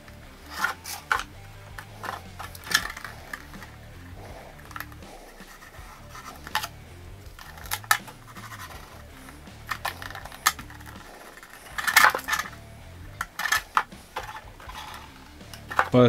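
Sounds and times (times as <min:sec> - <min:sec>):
quiet background music: 0:00.0 - 0:16.0
plastic shell clicking and tapping: 0:00.6 - 0:03.7, 0:04.6 - 0:05.1, 0:09.5 - 0:12.6, 0:13.2 - 0:16.0.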